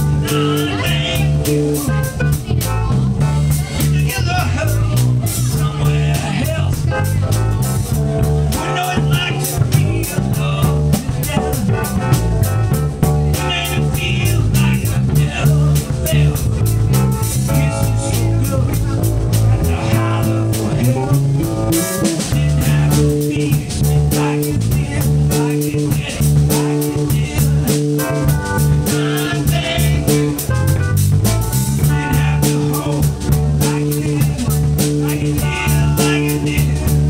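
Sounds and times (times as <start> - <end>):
drum kit beat: 0.0 - 37.0
electric bass line: 0.0 - 37.0
keyboard: 0.0 - 37.0.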